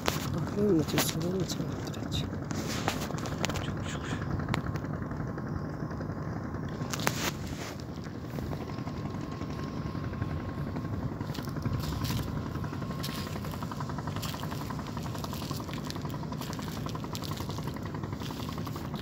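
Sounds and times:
engine running steadily: 0:00.0 - 0:19.0.

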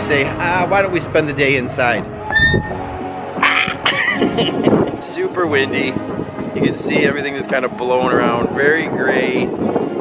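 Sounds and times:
wind buffeting microphone: 0:00.1 - 0:10.0
man laughing: 0:03.4 - 0:05.1.

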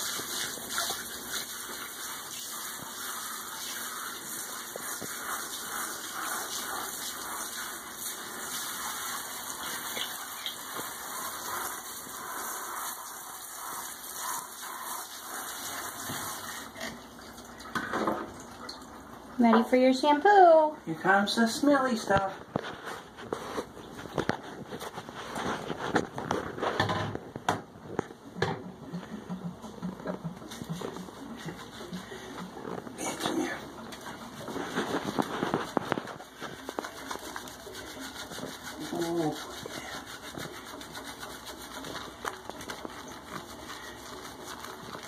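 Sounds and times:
rubbing and squishing wet fur: 0:00.0 - 0:17.5, 0:19.0 - 0:26.8, 0:28.8 - 0:45.0.

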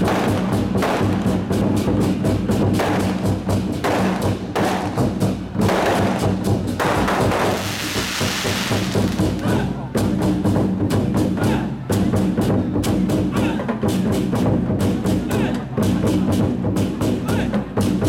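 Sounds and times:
large drums beaten in rolls: 0:00.0 - 0:18.0.

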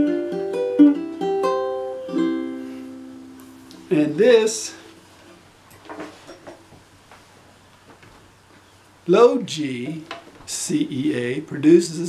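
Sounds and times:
ukulele handling knocks and rustles: 0:05.2 - 0:07.2.

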